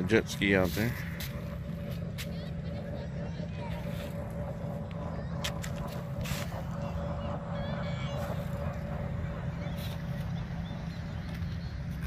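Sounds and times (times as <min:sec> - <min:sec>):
jet ski engine droning: 0:00.0 - 0:12.0.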